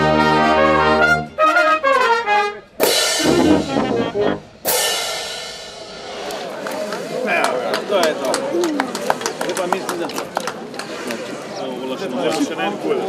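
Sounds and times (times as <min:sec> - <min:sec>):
wind band playing: 0:00.0 - 0:06.6
loud cymbal crashes: 0:02.8 - 0:06.4.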